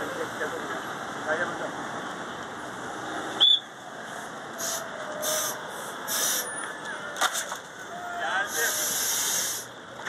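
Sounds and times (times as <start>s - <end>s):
road traffic: 0.0s - 10.0s.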